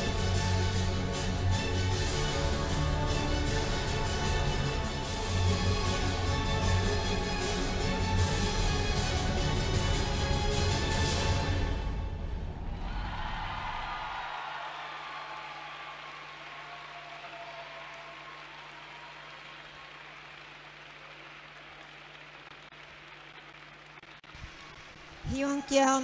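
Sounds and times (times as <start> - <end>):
audience applauding: 12.8 - 26.0.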